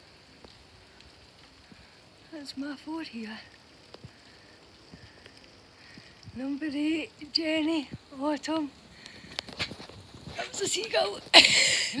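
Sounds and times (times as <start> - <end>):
light rain falling: 0.0 - 12.0.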